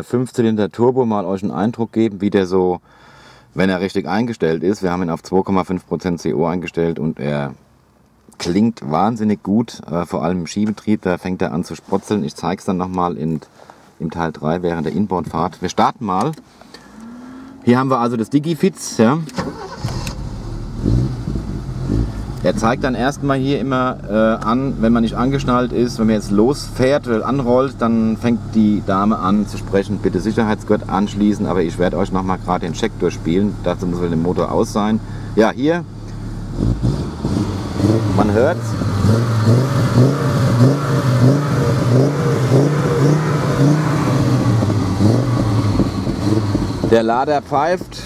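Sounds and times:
car engine starting: 16.2 - 48.0.

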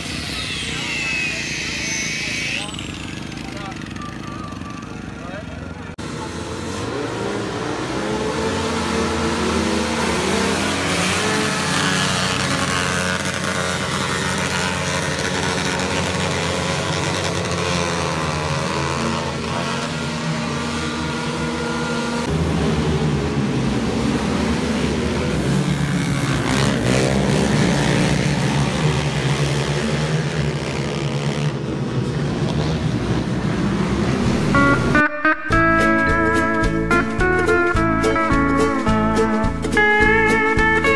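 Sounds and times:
high-revving racing engines: 0.0 - 35.0.

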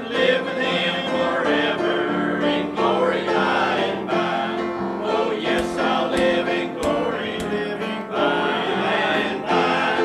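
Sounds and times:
choir singing a hymn: 0.0 - 10.0
sharp knocks: 5.5 - 7.6.

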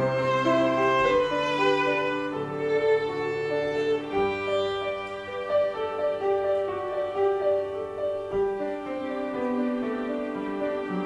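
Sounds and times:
grand piano accompaniment: 0.0 - 11.0
violin melody: 0.0 - 11.0.

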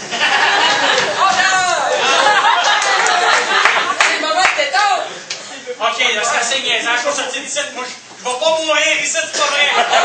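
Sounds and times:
men exclaiming: 1.0 - 3.4.

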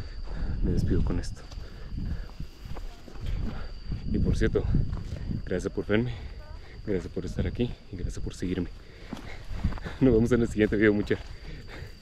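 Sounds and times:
steady high-pitched tone: 0.0 - 12.0.

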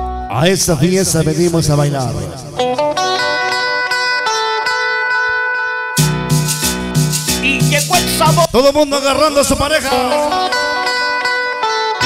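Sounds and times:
lone melodic instrument held notes: 3.0 - 8.5.

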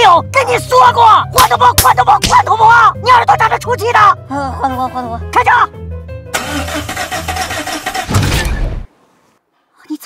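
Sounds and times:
car engine stalling: 6.3 - 8.9.

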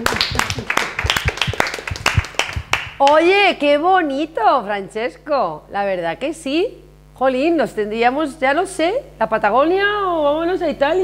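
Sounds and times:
small group clapping: 0.0 - 3.2.

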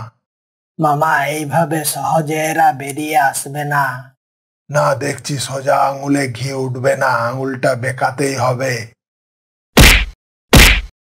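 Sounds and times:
cartoon whack sound effects: 9.8 - 11.0.

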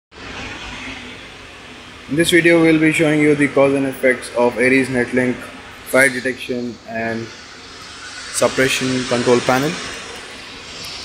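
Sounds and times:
hiss: 4.3 - 11.0.

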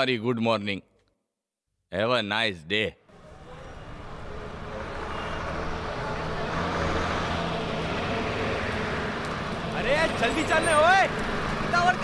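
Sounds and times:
road traffic: 3.1 - 12.0
vehicle engine hum: 3.1 - 12.0.

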